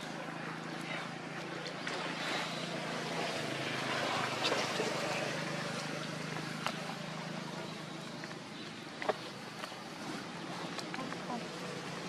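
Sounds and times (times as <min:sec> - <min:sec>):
low motor-like hum: 0:00.0 - 0:12.0.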